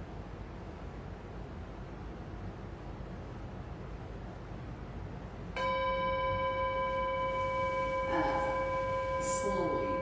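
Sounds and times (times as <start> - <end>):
bell-like chime ringing: 5.6 - 10.0.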